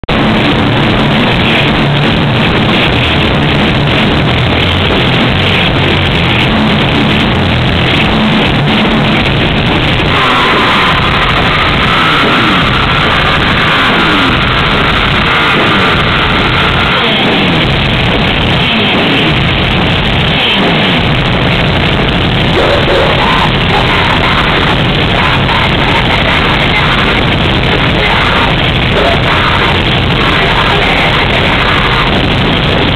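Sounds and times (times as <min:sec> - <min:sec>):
black metal band playing live: 0:00.1 - 0:32.9.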